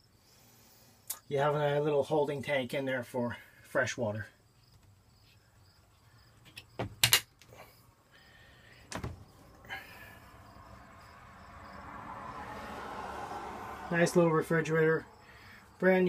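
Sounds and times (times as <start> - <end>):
door and fitting knocks and clicks: 8.9 - 9.2.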